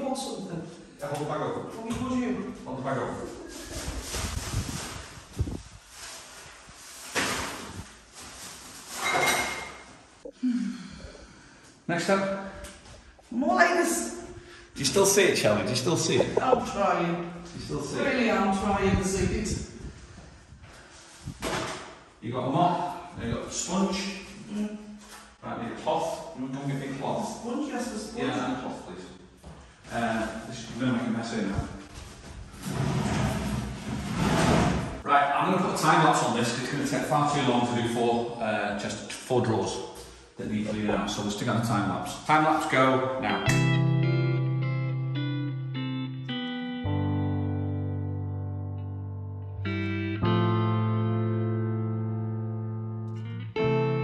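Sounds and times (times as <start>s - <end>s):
plastic bin bag rustling: 3.3s - 9.2s.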